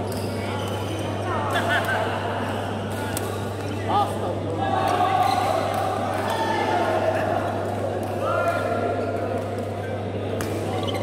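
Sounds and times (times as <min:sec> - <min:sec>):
shoe squeaking on court floor: 0:00.0 - 0:01.2, 0:10.7 - 0:11.0.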